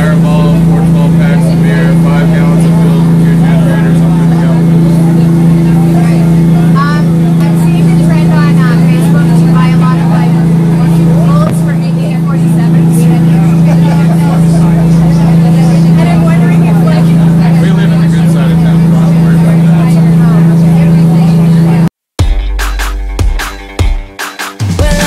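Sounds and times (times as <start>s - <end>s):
boat engine droning: 0.0s - 21.9s
people talking and laughing: 0.0s - 21.9s.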